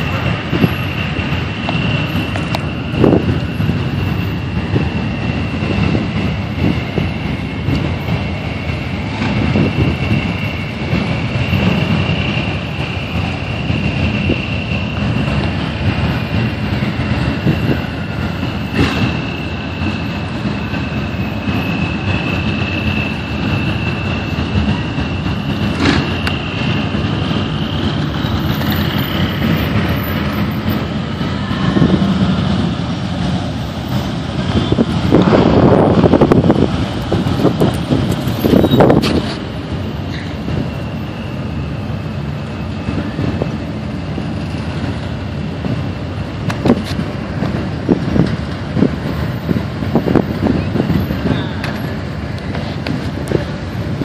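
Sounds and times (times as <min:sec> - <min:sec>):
steady high-pitched whine: 0:00.0 - 0:54.0
vehicle engines rumbling: 0:00.0 - 0:54.0.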